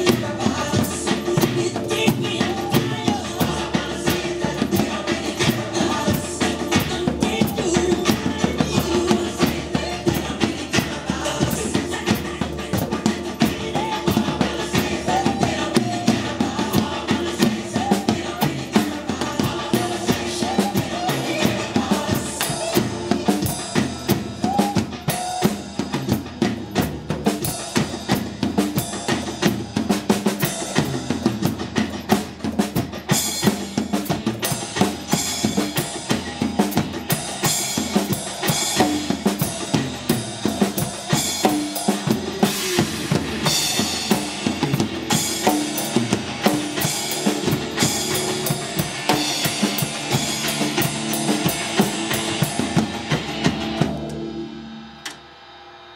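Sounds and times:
pop song backing track: 0.0s - 24.6s
acoustic drum kit played fast: 0.0s - 55.2s.

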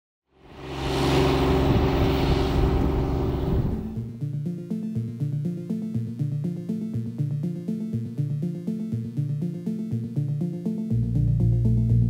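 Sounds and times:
engine running: 0.3s - 4.2s
rushing wind: 0.4s - 4.1s.

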